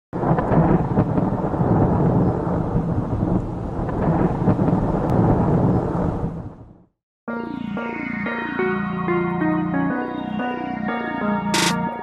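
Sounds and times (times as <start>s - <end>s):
steady rain: 0.2s - 6.6s
thunder: 0.2s - 6.8s.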